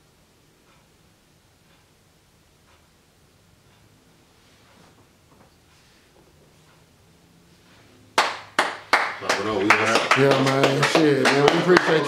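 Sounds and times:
loud hand claps: 0:08.2 - 0:12.0.

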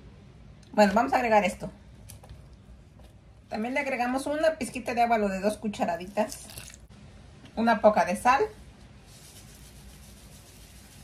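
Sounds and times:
room noise hiss: 0:05.1 - 0:11.0.

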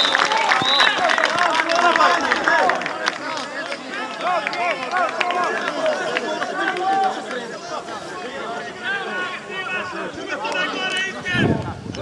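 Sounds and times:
people calling out and talking: 0:00.0 - 0:12.0.

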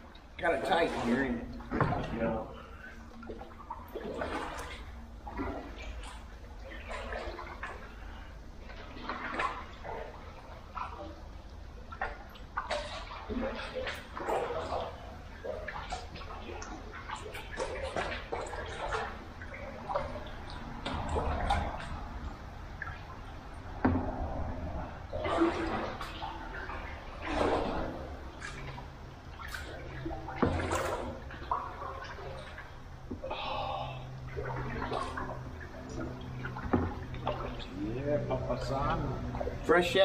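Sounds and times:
water splashing and dripping: 0:00.0 - 0:40.0
kayak paddle strokes: 0:00.5 - 0:39.7.

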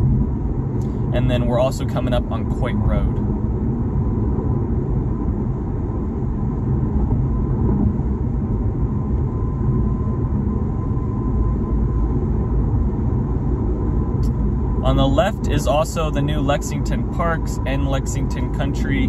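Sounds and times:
car road and tyre noise: 0:00.0 - 0:19.0.

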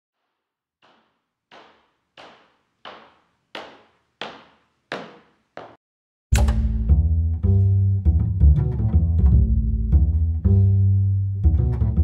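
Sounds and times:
percussive hits sting: 0:06.3 - 0:07.0.

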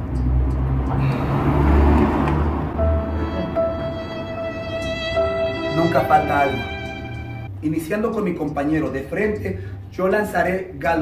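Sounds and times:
music with held tone: 0:02.7 - 0:07.8.

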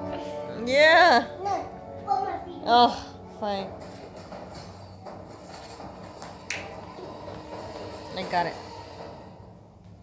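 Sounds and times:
faint television sound: 0:00.0 - 0:08.8.

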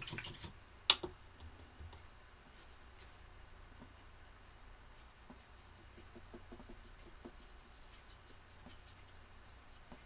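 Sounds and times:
paintbrush scratching in palette: 0:05.0 - 0:10.0.

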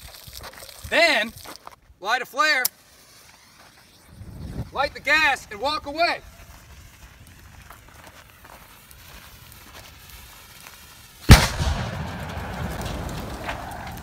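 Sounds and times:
fire burning low: 0:02.7 - 0:14.0
rushing fireball: 0:09.6 - 0:14.0
loud explosion blast: 0:11.3 - 0:14.0.

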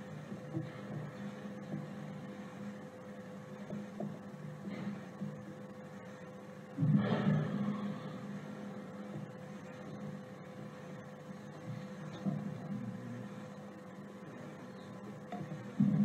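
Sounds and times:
electrical hum: 0:00.0 - 0:16.0
low background rumble: 0:00.0 - 0:16.0.

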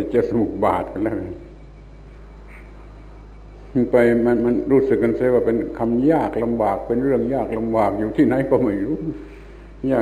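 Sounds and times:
man talking: 0:00.0 - 0:01.5, 0:03.7 - 0:10.0
recording hum and hiss: 0:00.0 - 0:10.0.

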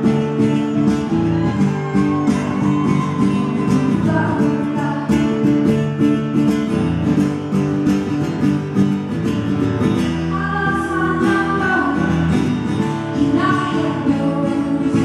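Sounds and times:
acoustic guitar strumming: 0:00.0 - 0:15.0
woman singing: 0:03.3 - 0:06.0, 0:10.2 - 0:15.0.

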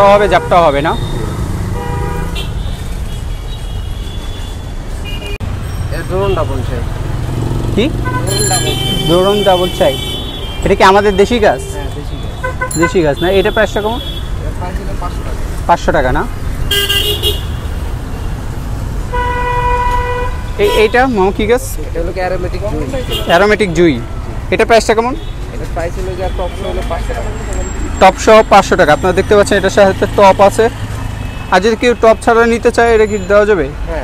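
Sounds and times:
high vehicle horn tones: 0:00.0 - 0:06.8, 0:08.0 - 0:14.5, 0:16.7 - 0:17.8, 0:19.1 - 0:21.2, 0:22.8 - 0:23.6
road traffic rumbling: 0:00.0 - 0:34.0.

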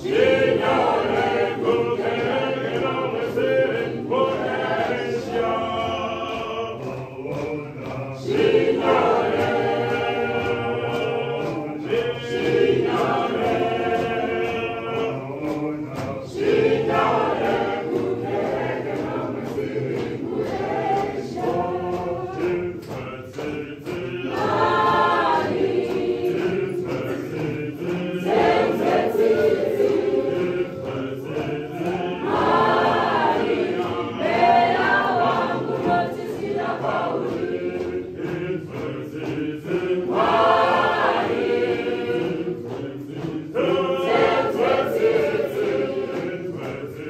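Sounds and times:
church choir singing a hymn: 0:00.0 - 0:47.0.

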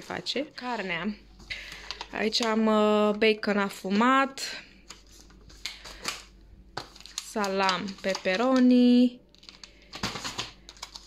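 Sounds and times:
plastic packaging crinkling: 0:04.8 - 0:11.0.

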